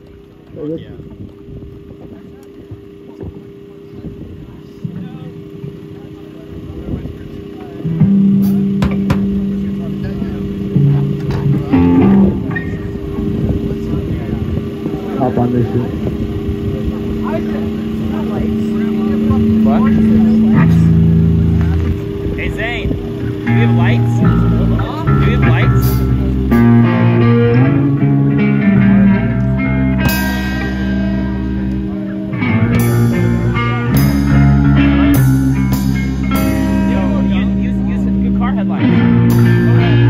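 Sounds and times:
amp hum: 0:00.0 - 0:40.0
crowd chatter: 0:00.0 - 0:40.0
electric bass and guitar notes: 0:00.0 - 0:40.0.

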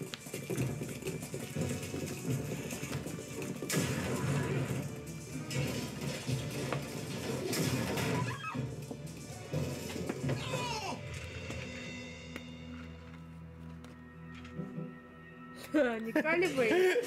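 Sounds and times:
dramatic score music: 0:00.0 - 0:17.0
noisy sound effects: 0:00.5 - 0:12.2.

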